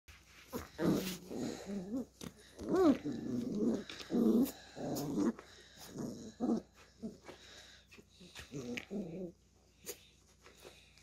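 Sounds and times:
puppies growling and whining: 0:00.5 - 0:10.1.

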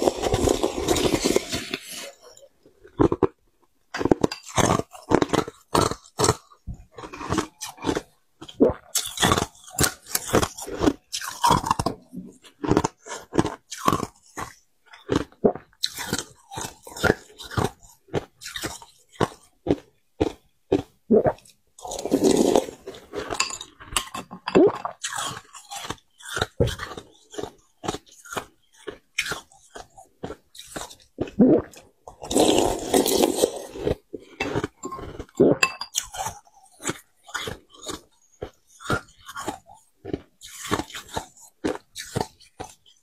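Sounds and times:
chewing and crunching ice: 0:00.0 - 0:43.0.

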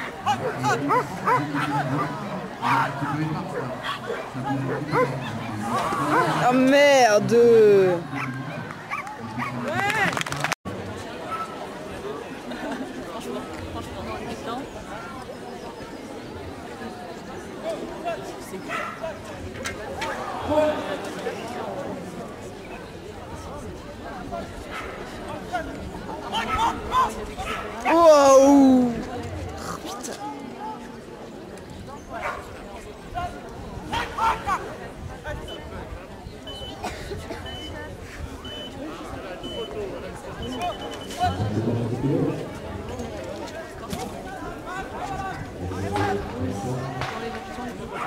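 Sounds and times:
crowd chatter: 0:00.0 - 0:48.0
spectators talking and murmuring: 0:00.0 - 0:48.0
dog barking: 0:18.7 - 0:19.0.

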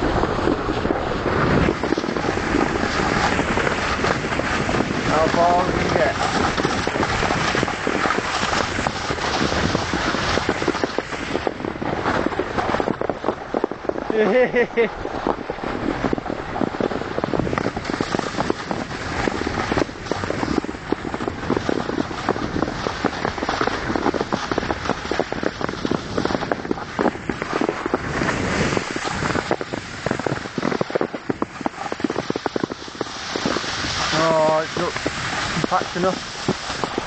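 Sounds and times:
footsteps crunching snow: 0:00.0 - 0:37.0
wind on microphone: 0:00.0 - 0:37.0.

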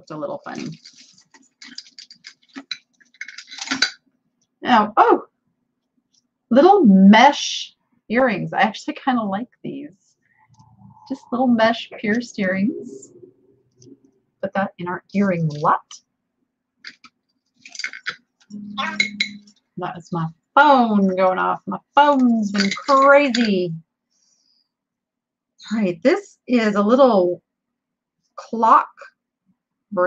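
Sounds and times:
jewelry clinking and rattling: 0:00.6 - 0:04.0, 0:16.9 - 0:18.2, 0:22.5 - 0:23.6.

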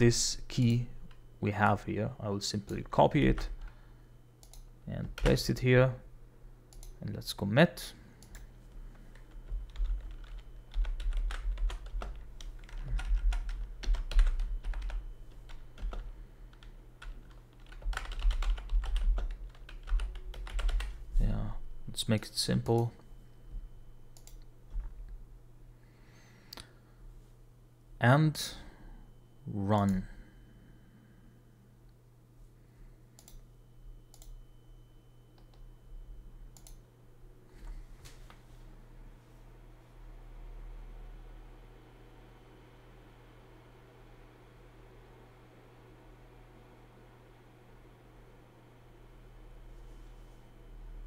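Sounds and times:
steady low hum: 0:00.0 - 0:51.0
computer mouse clicking: 0:04.4 - 0:05.4, 0:06.7 - 0:07.0, 0:24.2 - 0:24.5, 0:33.2 - 0:33.4, 0:34.1 - 0:34.4, 0:36.6 - 0:36.8
typing on computer keyboard: 0:09.1 - 0:20.9.

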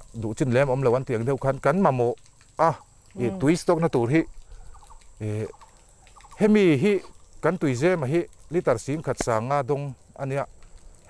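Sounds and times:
man talking: 0:00.0 - 0:04.3, 0:05.2 - 0:05.6, 0:06.4 - 0:10.5.

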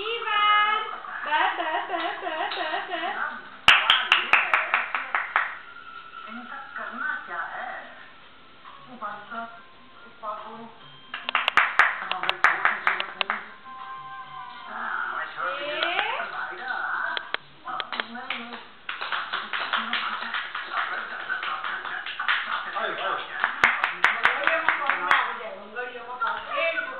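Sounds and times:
hand claps: 0:03.7 - 0:05.6, 0:11.2 - 0:13.5, 0:17.2 - 0:25.3
voices: 0:12.0 - 0:26.9.

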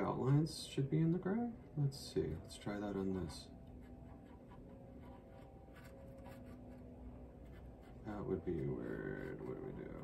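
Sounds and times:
faint steady hum: 0:00.0 - 0:10.0
paintbrush dabbing paint: 0:02.4 - 0:10.0.

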